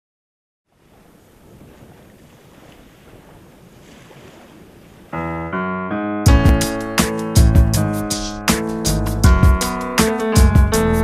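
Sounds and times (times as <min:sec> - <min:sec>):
wind and sea rushing: 0:00.7 - 0:05.5, 0:06.3 - 0:11.0
song with sustained chords: 0:05.3 - 0:11.0.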